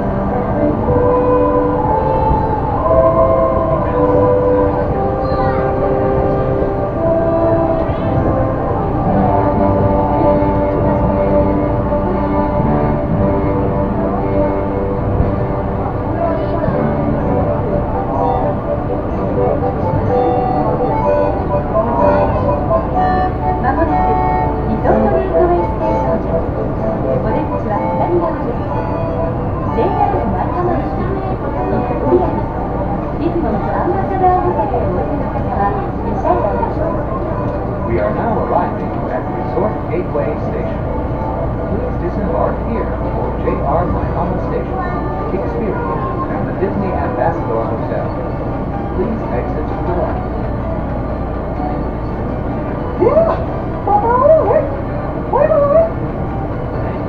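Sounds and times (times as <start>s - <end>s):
monorail rumbling: 0.0s - 57.0s
people talking indistinctly: 0.0s - 57.0s
slow background music: 0.0s - 57.0s.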